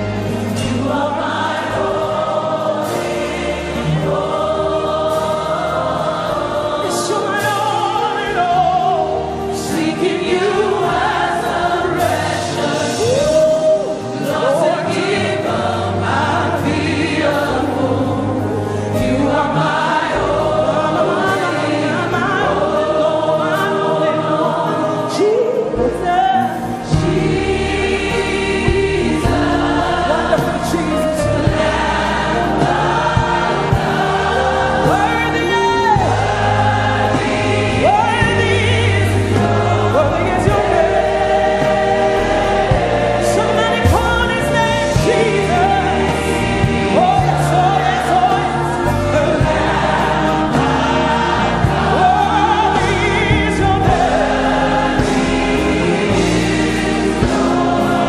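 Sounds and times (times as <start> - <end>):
choir singing gospel: 0.0 - 58.0
instrumental backing: 0.0 - 58.0.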